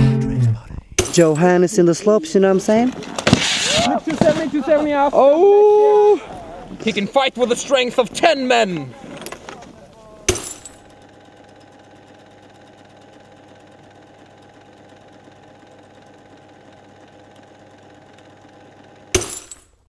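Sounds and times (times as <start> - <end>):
steady mechanical hum: 0.4 - 19.8.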